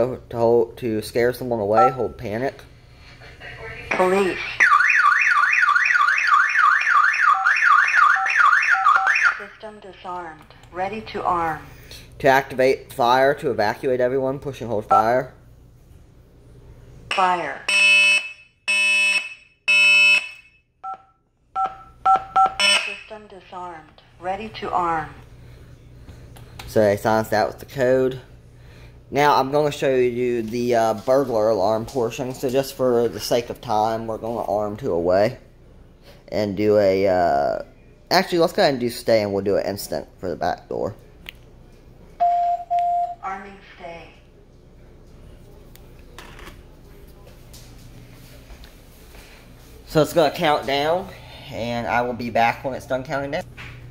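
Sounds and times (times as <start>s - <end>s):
low room hum: 0.0s - 53.9s
alarm siren long beeps: 4.6s - 9.5s, 17.7s - 23.1s.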